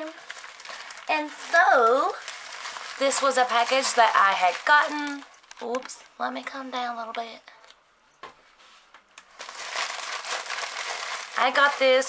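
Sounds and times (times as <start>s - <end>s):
plastic packaging crinkling: 0.0s - 6.1s, 9.2s - 12.0s.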